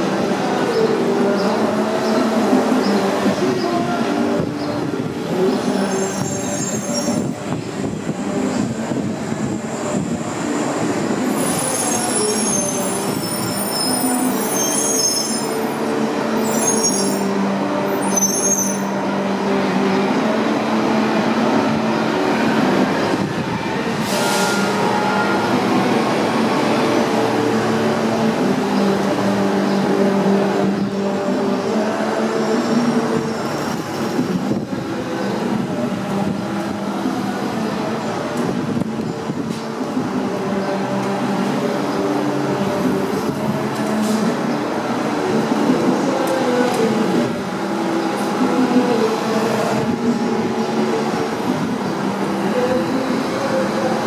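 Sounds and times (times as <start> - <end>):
buses pulling away: 0.0 - 54.0
passing train rumble: 0.0 - 54.0
street traffic: 0.0 - 54.0
high-pitched metal squeals: 5.8 - 7.4, 11.2 - 19.0, 24.0 - 25.6.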